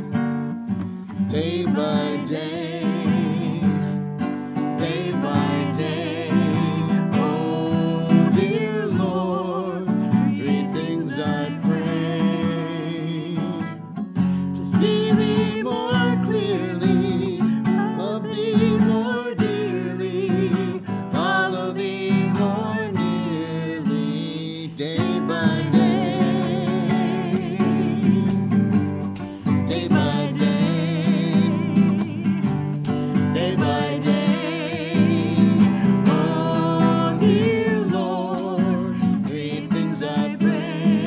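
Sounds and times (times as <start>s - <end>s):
acoustic guitar playing: 0.0s - 41.0s
person singing with vibrato: 1.1s - 13.8s, 14.4s - 41.0s.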